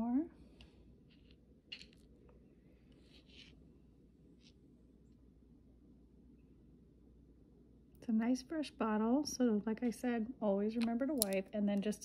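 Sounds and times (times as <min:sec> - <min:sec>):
faint clicks and scrapes of bottle: 0:02.8 - 0:03.6.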